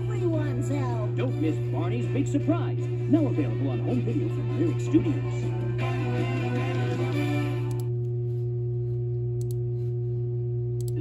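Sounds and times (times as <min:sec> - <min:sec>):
steady low hum: 0:00.0 - 0:11.0
faint clicks: 0:09.4 - 0:09.6.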